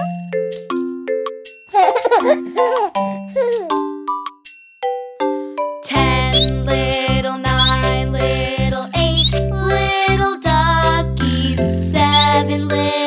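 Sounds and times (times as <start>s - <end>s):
bell-like chiming jingle: 1.5s - 5.9s
baby giggling: 1.7s - 3.9s
children's song with bass and beat: 5.3s - 13.0s.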